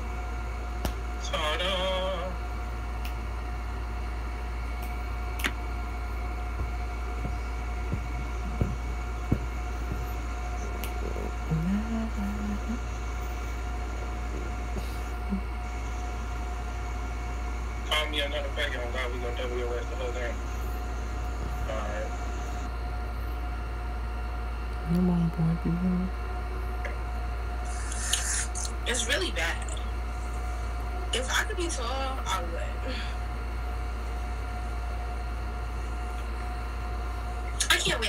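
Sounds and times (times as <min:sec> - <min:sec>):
low hum: 0:00.0 - 0:38.0.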